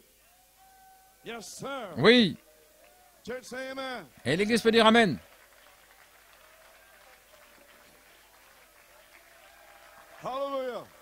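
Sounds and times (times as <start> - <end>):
faint applause: 0.2 - 11.0.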